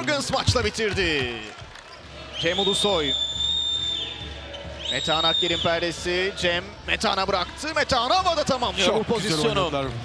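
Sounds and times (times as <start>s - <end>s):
shrill whistle: 2.3s - 6.0s.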